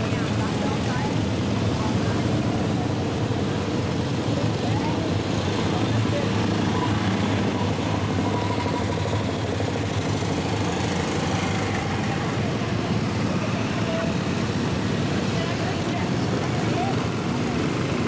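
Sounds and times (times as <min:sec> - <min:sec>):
engine drone: 0:00.0 - 0:18.0
indistinct voices: 0:00.0 - 0:18.0.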